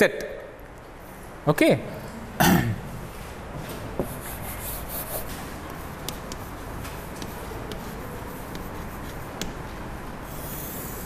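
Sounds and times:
man clearing his throat: 0:02.4 - 0:02.9
chalk tapping on blackboard: 0:04.0 - 0:11.0.

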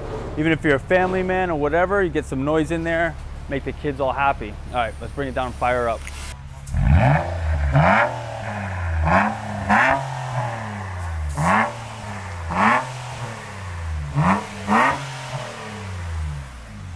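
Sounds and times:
car engine idling: 0:00.0 - 0:16.9
engine throttle blips: 0:00.0 - 0:16.9.

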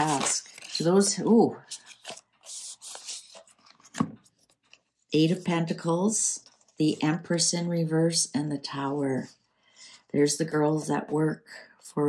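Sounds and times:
cards swishing and sliding: 0:01.7 - 0:04.0.

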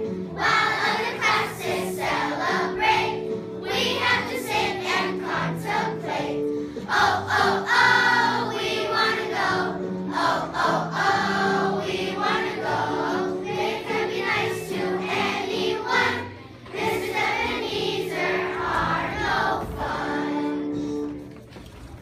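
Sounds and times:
children's choir singing: 0:00.0 - 0:21.2.

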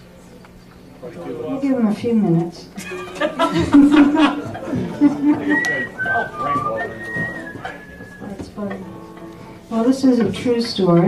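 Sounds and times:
person chuckling: 0:02.8 - 0:05.7
whistled melody: 0:05.5 - 0:08.4.

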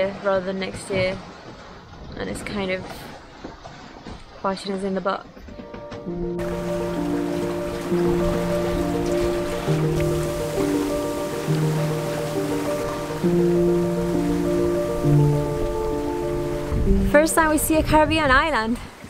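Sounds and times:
sustained chord music: 0:05.5 - 0:17.8
wind and sea hiss: 0:06.4 - 0:19.0.

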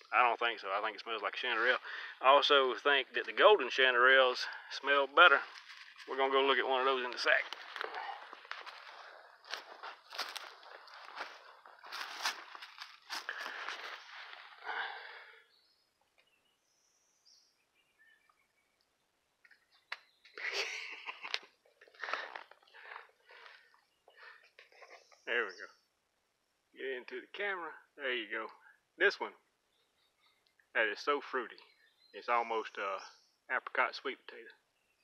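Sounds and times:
footsteps crunching dry leaves: 0:07.4 - 0:15.1.

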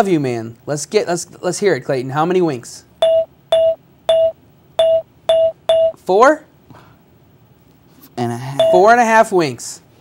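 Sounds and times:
electronic chime tones: 0:03.0 - 0:06.0, 0:08.6 - 0:08.9.

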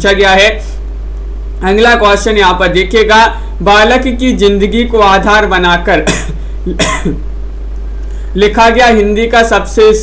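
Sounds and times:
man coughing: 0:06.0 - 0:07.2.

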